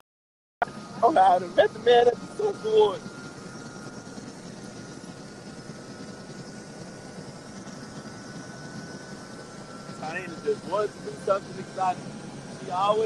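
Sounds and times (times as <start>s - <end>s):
faint high whine: 0.6s - 13.0s
helicopter engine and rotor drone: 0.6s - 13.0s.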